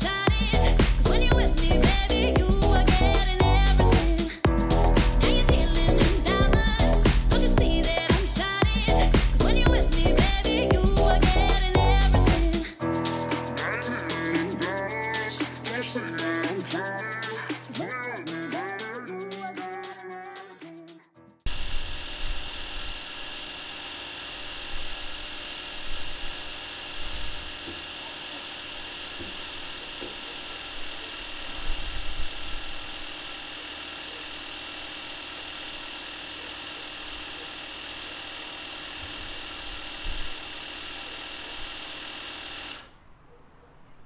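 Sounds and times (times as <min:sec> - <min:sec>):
electric air compressor buzzing: 0:00.0 - 0:19.5, 0:21.5 - 0:43.0.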